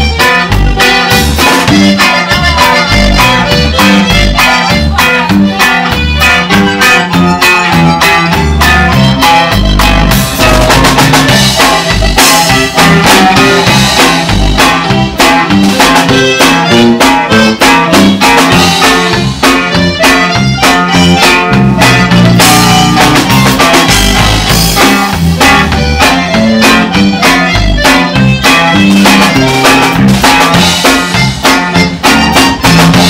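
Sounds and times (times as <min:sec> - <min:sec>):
accordion lead: 0:00.0 - 0:33.0
polka band playing: 0:00.0 - 0:33.0.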